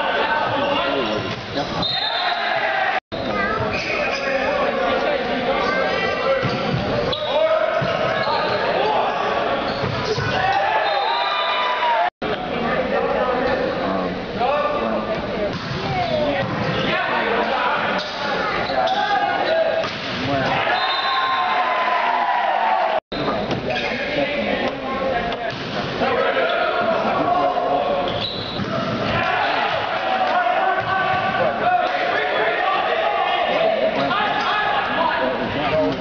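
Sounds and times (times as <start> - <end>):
people shouting and calling out: 0.0 - 13.3, 15.8 - 23.0, 26.0 - 36.0
people shouting: 2.1 - 3.0, 10.1 - 12.1, 18.8 - 23.0, 28.7 - 35.4.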